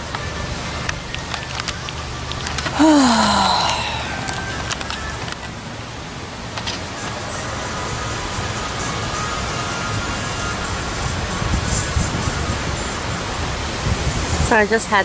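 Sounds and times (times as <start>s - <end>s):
wind rushing through leaves: 0.0s - 15.0s
wind rumble on microphone: 8.3s - 15.0s.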